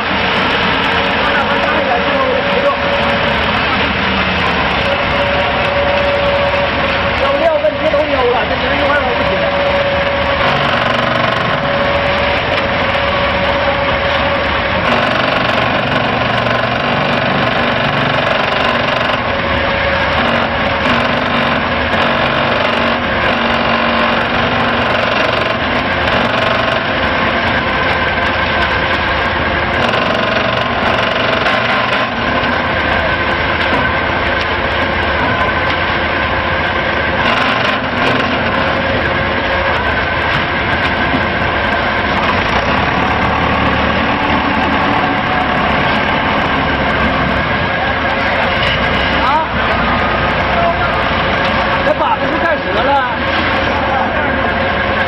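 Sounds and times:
concrete pump and mixer running: 0.0s - 55.0s.

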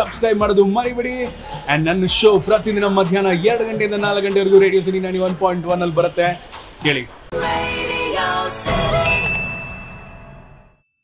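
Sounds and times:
music: 0.0s - 10.9s
high bell-like ding: 9.0s - 11.0s.

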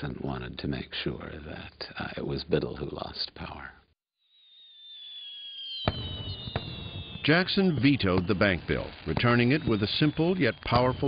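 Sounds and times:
firework whistling: 4.2s - 11.0s.

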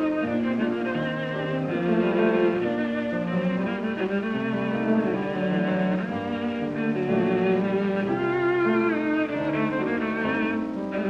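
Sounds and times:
piano accompaniment: 0.0s - 11.0s
viola melody with vibrato: 0.0s - 11.0s.

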